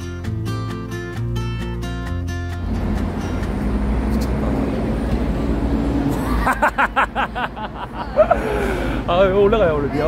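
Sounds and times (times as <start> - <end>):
background music: 0.0 - 5.0.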